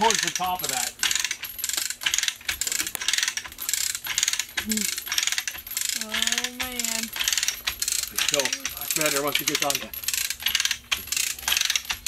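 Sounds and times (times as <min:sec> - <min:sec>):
ratchet clicking: 0:00.0 - 0:12.0
steel chain rattling: 0:00.0 - 0:12.0.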